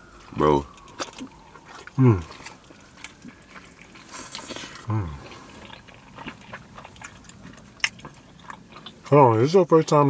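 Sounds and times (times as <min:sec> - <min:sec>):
person chewing food: 0:00.0 - 0:10.0.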